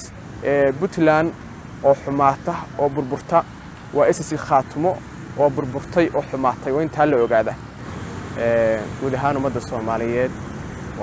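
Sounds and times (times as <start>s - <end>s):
man talking: 0.0s - 7.6s, 8.4s - 10.4s.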